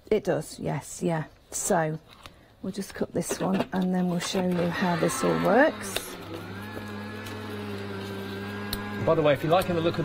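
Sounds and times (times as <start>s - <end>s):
die-cutting machine motor hum: 4.6s - 10.0s.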